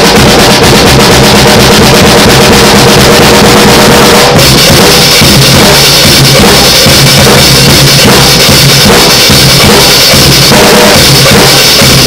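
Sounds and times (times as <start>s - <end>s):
drum roll: 0.0s - 12.0s.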